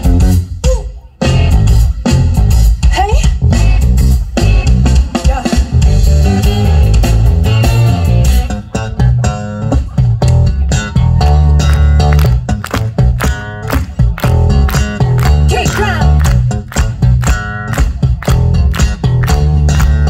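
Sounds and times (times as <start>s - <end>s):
electric bass guitar line: 0.0s - 20.0s
funk band playing live: 0.0s - 20.0s.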